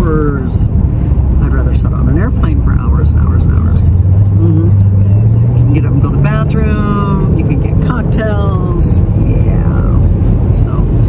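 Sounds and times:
woman talking: 0:00.0 - 0:00.7, 0:01.4 - 0:03.8, 0:04.4 - 0:11.0
car engine and road rumble: 0:00.0 - 0:11.0.

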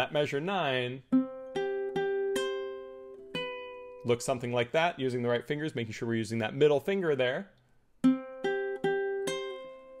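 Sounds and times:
ukulele plucked notes: 0:01.1 - 0:04.1, 0:08.0 - 0:10.0.

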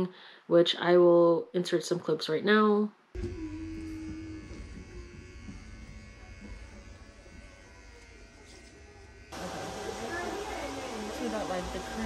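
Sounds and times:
electric hair clippers buzzing: 0:03.2 - 0:12.0.

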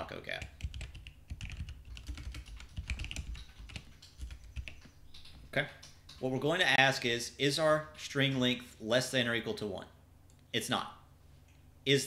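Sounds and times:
typing on computer keyboard: 0:00.3 - 0:06.3.

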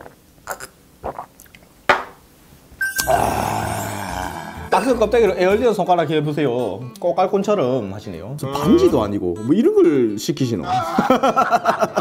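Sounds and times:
man's throaty exhale: 0:03.0 - 0:04.8.

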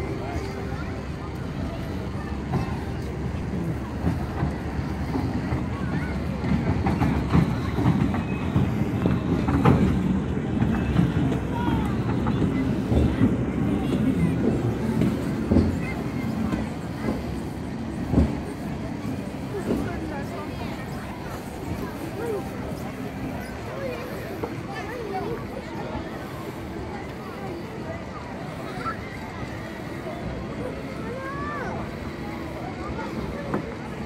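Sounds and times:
people's voices: 0:00.0 - 0:34.0
train carriages rolling on rails: 0:00.0 - 0:34.0.

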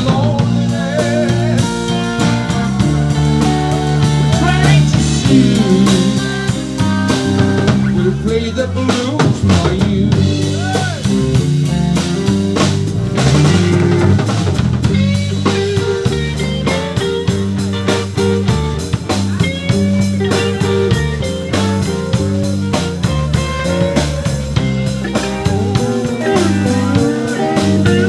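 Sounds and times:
drum kit steady beat: 0:00.0 - 0:28.0
electric bass: 0:00.0 - 0:28.0
electric guitar: 0:00.0 - 0:28.0.

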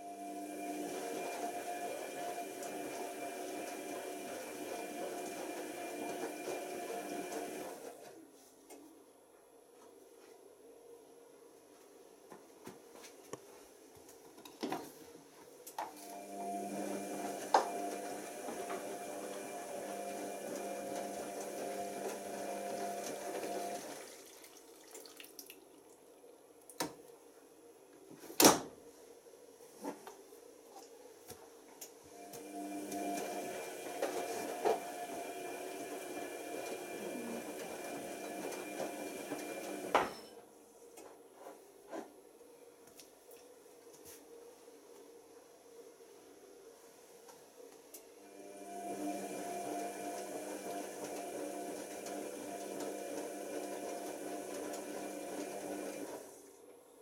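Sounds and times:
washing machine drum motor humming: 0:00.0 - 0:07.8, 0:16.2 - 0:24.8, 0:32.2 - 0:40.1, 0:48.7 - 0:56.2.

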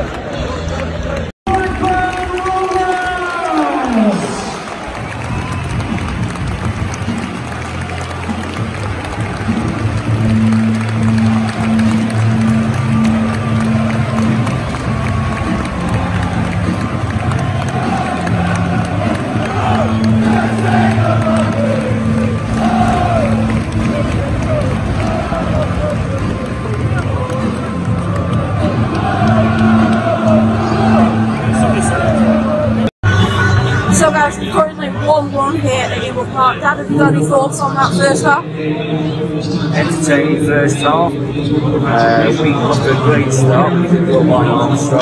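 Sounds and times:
crowd voices: 0:00.0 - 0:45.0
crowd singing melody: 0:17.2 - 0:34.6.

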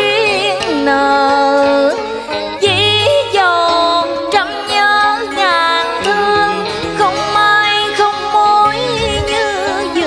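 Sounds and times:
melody of sliding notes: 0:02.6 - 0:09.8
low bass note: 0:08.9 - 0:09.4.

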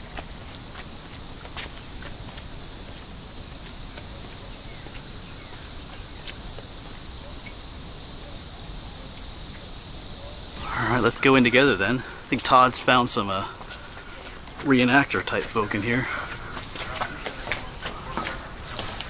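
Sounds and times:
footsteps on path: 0:00.0 - 0:07.4, 0:10.6 - 0:19.0
insects chirping: 0:00.0 - 0:19.0.

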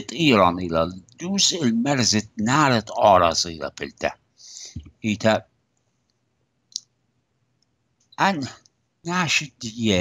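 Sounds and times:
person speaking: 0:00.0 - 0:05.4, 0:08.2 - 0:10.0.

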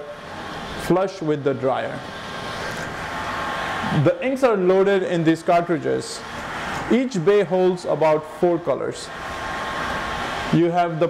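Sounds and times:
printer whirring: 0:00.0 - 0:11.0.

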